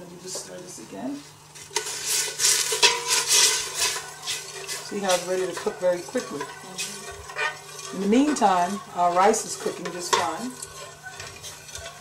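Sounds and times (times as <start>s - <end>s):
spoon scraping metal pot: 1.6s - 12.0s.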